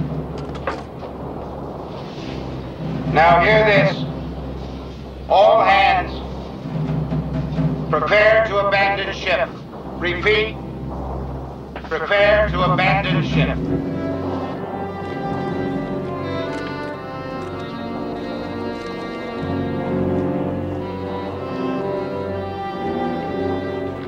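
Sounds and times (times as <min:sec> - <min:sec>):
low steady rumble: 0:00.0 - 0:24.0
orchestral film music: 0:00.0 - 0:24.0
man calling out: 0:03.1 - 0:04.1, 0:05.3 - 0:06.2.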